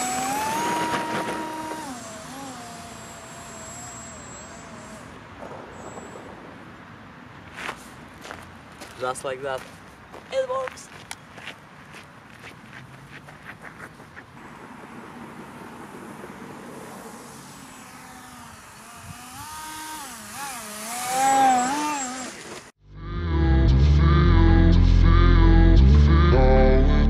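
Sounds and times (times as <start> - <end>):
electric motor and propeller whine: 0.0 - 6.4, 14.4 - 22.8
running footsteps on gravel: 7.5 - 14.3.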